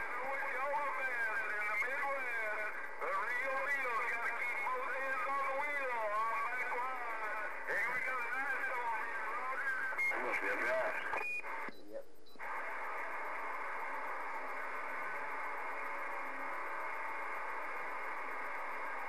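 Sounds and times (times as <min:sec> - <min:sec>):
garbled radio voice: 0:00.0 - 0:13.2
radio beep: 0:00.0 - 0:19.0
radio static hiss: 0:00.0 - 0:19.0.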